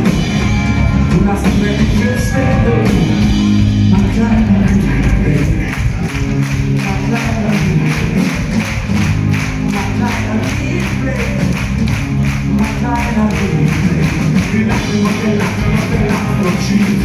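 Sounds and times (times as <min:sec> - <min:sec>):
drums fast beat: 0:00.0 - 0:17.0
live rock band playing: 0:00.0 - 0:17.0.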